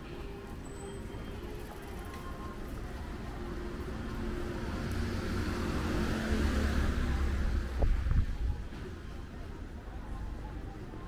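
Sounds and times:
small van driving past: 3.2s - 7.8s.

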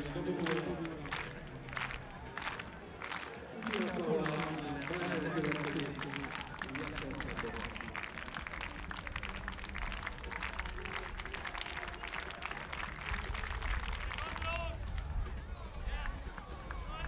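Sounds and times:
spectators clapping: 0.0s - 15.2s, 16.0s - 17.0s.

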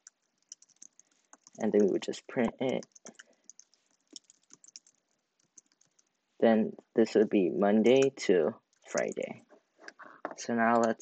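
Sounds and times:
faint keyboard typing: 0.0s - 6.2s, 7.9s - 11.0s.

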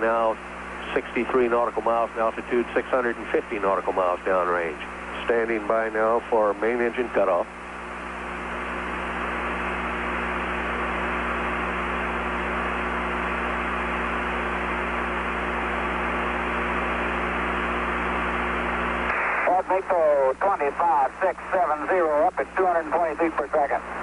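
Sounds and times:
voice over radio: 0.0s - 7.5s, 19.2s - 24.0s
radio channel hiss with low hum: 0.0s - 24.0s.

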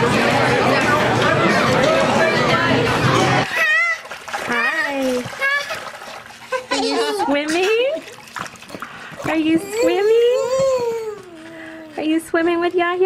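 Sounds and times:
restaurant chatter: 0.0s - 13.0s
light splashing in shallow water: 3.4s - 6.8s, 7.5s - 9.4s
woman's voice: 4.5s - 5.3s, 6.9s - 8.1s, 9.2s - 11.0s, 11.7s - 13.0s
baby's voice: 9.4s - 12.1s.

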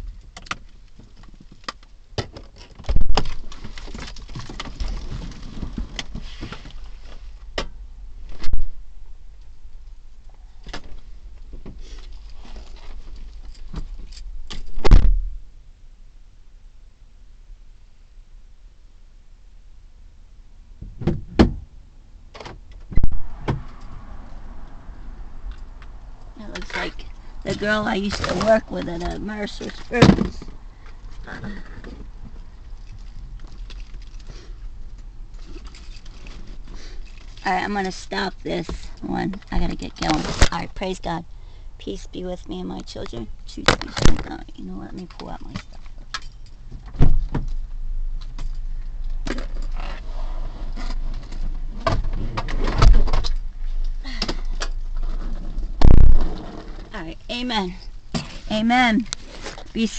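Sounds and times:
low steady hum: 0.0s - 59.9s
heavy thump: 14.7s - 15.4s.

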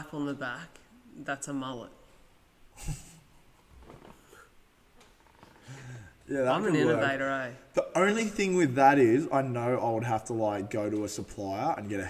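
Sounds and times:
faint room sound: 0.0s - 12.0s
man laughing: 2.8s - 3.3s.

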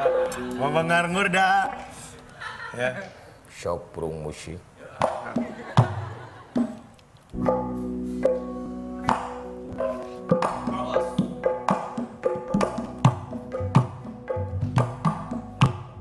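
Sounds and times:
ringing tuned percussion: 7.4s - 16.0s.

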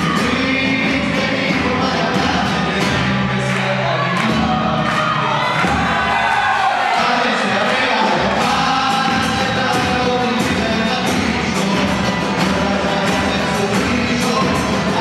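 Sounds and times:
steady drum beat: 0.0s - 4.8s, 5.5s - 6.6s, 8.0s - 15.0s
audience crowd sound: 0.0s - 15.0s
guitars: 0.0s - 15.0s
voices singing together: 0.0s - 15.0s.

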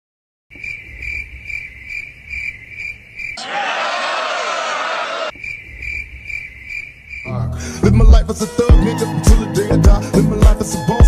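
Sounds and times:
cricket chirping: 0.5s - 3.4s, 5.3s - 7.5s
loud noisy voices: 3.4s - 5.3s.

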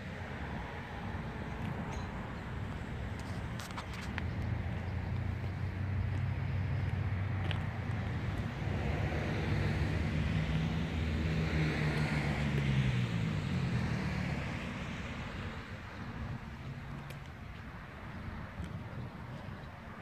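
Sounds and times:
vehicle engine humming: 0.0s - 20.0s.

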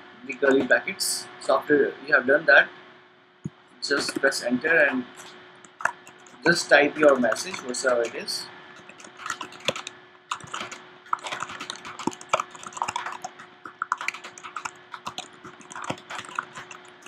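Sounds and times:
keyboard typing clicks: 8.8s - 17.0s.

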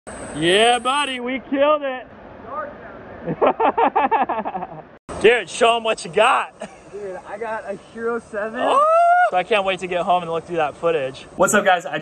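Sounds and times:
man speaking: 0.4s - 3.0s, 5.2s - 12.0s.

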